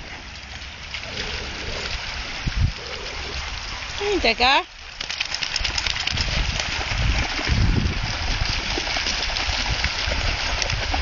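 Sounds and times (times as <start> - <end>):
sea water splashing at shore: 0.0 - 11.0.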